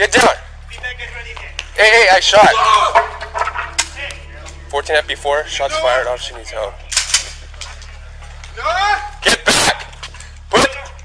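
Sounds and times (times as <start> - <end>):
body camera low hum: 3.4 - 11.0.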